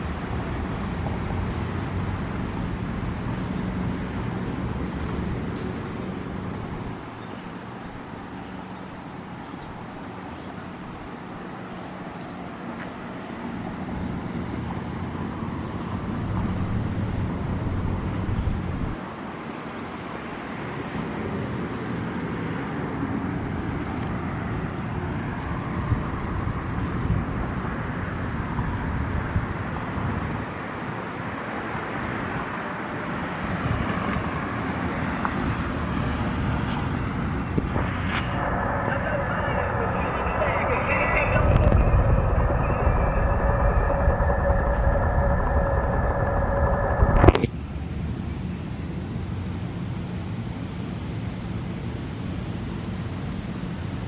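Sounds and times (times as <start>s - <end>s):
passing vehicles: 0.0s - 54.0s
deep rumble: 37.5s - 47.5s
steady high tones: 37.7s - 47.4s.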